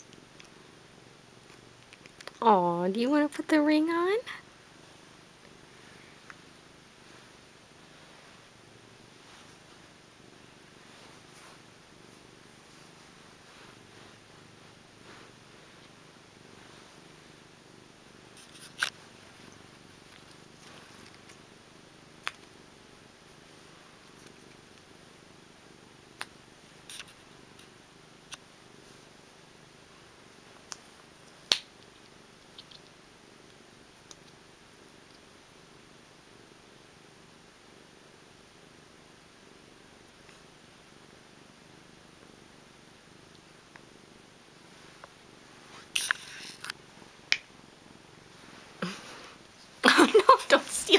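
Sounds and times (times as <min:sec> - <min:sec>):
cat purring: 0:00.0 - 0:50.9.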